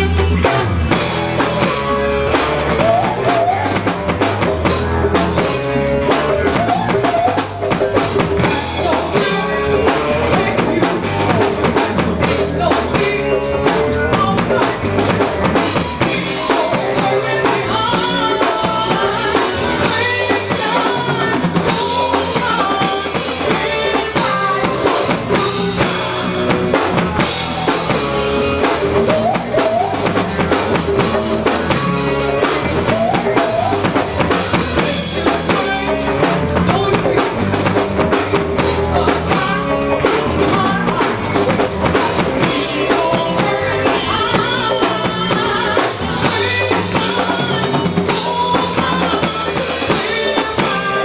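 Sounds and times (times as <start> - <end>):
live funk band playing: 0.0 - 51.0
woman singing lead: 0.0 - 51.0.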